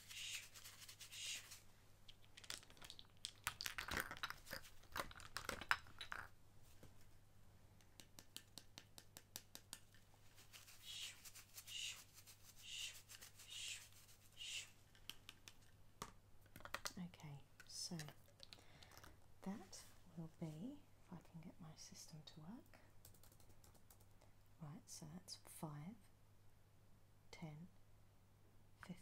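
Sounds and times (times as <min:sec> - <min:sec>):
soft hissing swishes: 0:00.0 - 0:01.7, 0:10.4 - 0:14.8.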